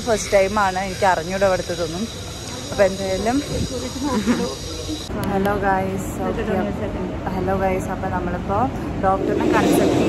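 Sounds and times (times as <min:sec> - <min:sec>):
woman talking: 0:00.0 - 0:04.4, 0:05.1 - 0:10.0.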